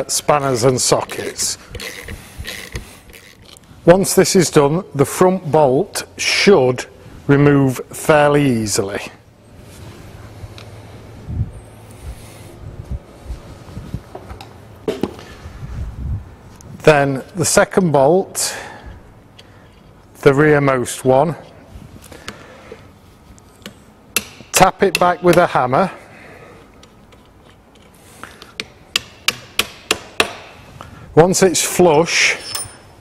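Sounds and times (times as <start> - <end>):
metal tool clink: 32.3 - 32.9.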